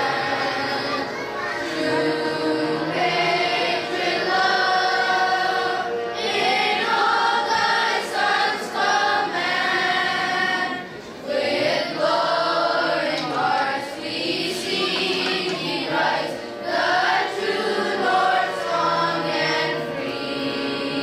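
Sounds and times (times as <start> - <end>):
children's choir singing: 0.0 - 21.0.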